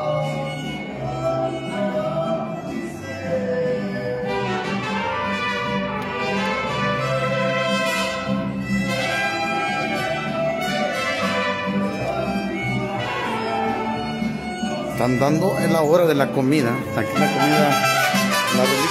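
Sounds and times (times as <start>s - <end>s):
mariachi band playing: 0.0s - 18.9s.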